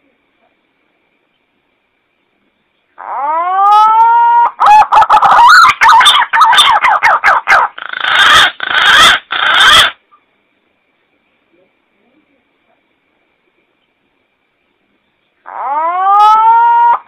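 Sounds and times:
pigeon calling: 0:03.0 - 0:10.0, 0:15.4 - 0:17.0.

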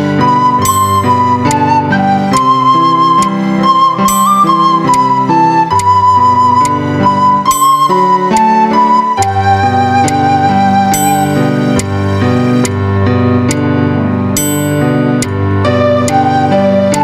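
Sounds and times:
recorder playing slow melody: 0:00.0 - 0:12.4, 0:15.4 - 0:17.0
low chordal accompaniment: 0:00.0 - 0:17.0.

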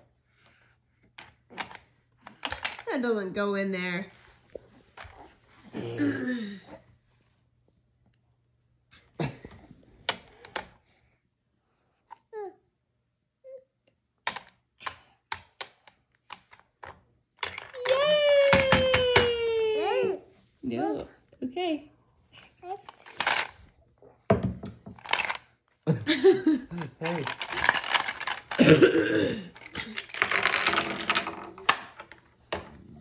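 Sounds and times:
plastic blocks clacking on toy: 0:01.2 - 0:02.9, 0:14.2 - 0:19.3, 0:22.8 - 0:23.6, 0:24.6 - 0:25.5, 0:26.6 - 0:28.8, 0:29.5 - 0:32.7
person clearing throat: 0:28.6 - 0:29.6.

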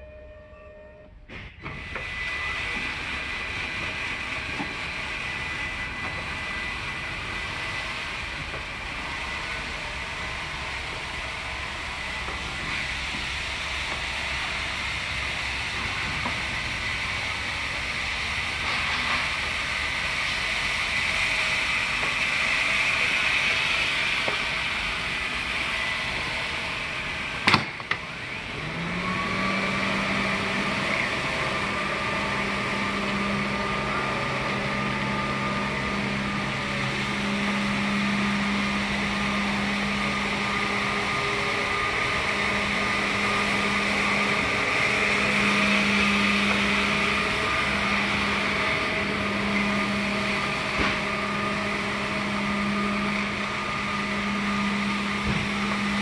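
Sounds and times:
floor scrubber whine: 0:00.0 - 0:56.0.

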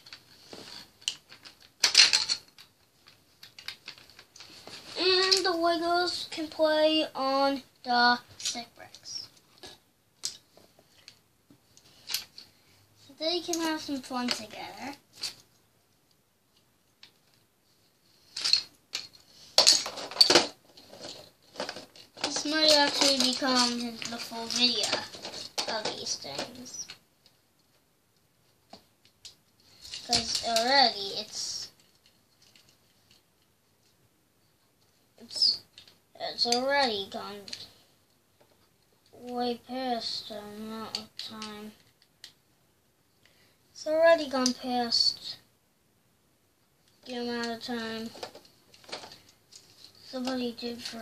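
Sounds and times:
plastic toy bricks clicking: 0:18.4 - 0:26.7.

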